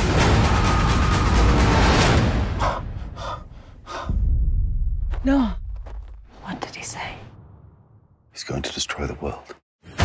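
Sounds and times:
woman breathing hard: 2.6s - 4.2s
low rumble: 3.5s - 8.2s.

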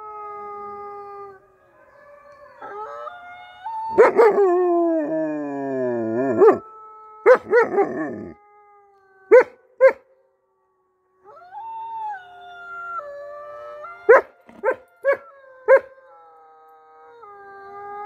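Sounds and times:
wolves howling: 0.0s - 10.0s, 10.9s - 18.0s.

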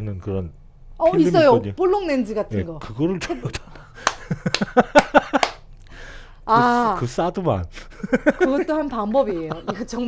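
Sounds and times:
sharp hand claps: 4.0s - 5.7s
laughter: 4.1s - 5.6s, 7.8s - 10.0s.

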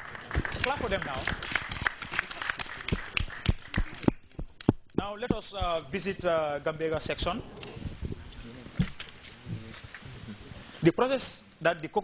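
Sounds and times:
audience clapping: 0.0s - 4.9s.

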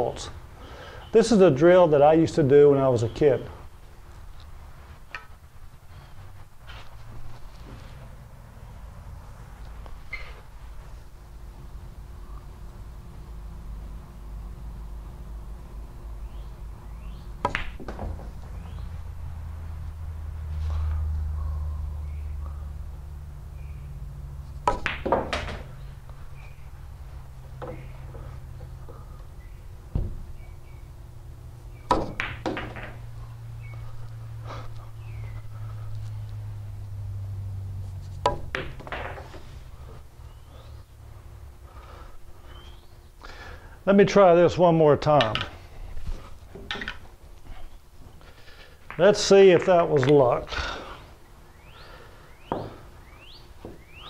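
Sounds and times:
billiard balls clacking: 17.4s - 18.7s, 24.6s - 26.5s, 27.3s - 29.3s, 31.8s - 33.5s, 38.2s - 40.0s, 45.1s - 45.6s, 46.5s - 47.1s, 48.5s - 50.8s, 52.5s - 53.0s.

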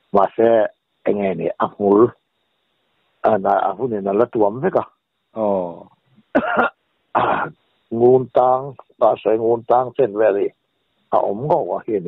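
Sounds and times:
person clearing throat: 6.3s - 7.6s.

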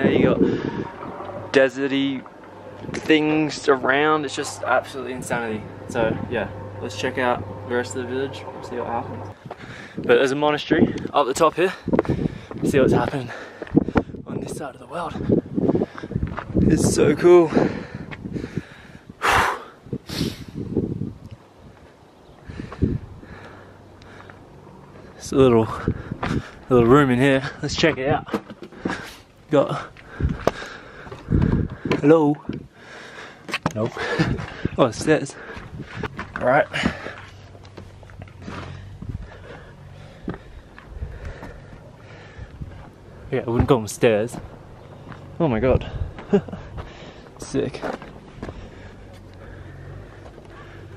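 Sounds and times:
footsteps on steps: 9.3s - 10.0s, 11.7s - 14.2s, 15.8s - 16.7s, 25.9s - 26.7s, 29.9s - 32.6s, 33.3s - 41.9s, 42.5s - 45.3s, 46.1s - 49.5s
hissing breaths: 17.4s - 20.7s, 22.3s - 26.7s, 28.6s - 43.4s, 44.4s - 47.4s, 48.3s - 50.9s.

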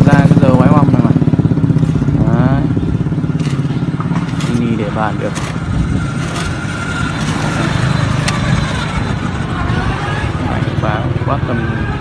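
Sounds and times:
low street rumble: 0.0s - 12.0s.

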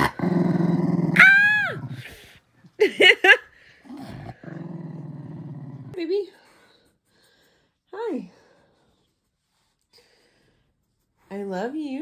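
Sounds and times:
dog growling: 0.0s - 2.3s, 3.8s - 6.0s.

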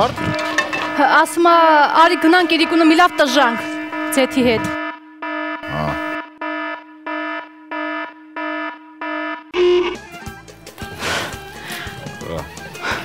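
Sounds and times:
electronic buzzer short beeps: 0.0s - 6.6s, 9.2s - 10.1s.

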